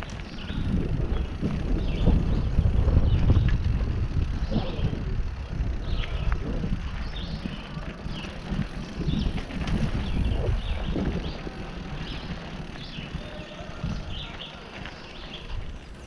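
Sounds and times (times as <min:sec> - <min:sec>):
bike rolling over gravel trail: 0:00.0 - 0:16.0
wind noise on camera: 0:00.0 - 0:16.0.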